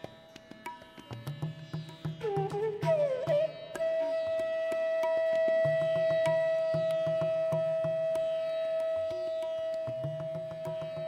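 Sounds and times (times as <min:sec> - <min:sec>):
tabla strokes: 0:00.0 - 0:11.0
bamboo flute: 0:02.2 - 0:11.0.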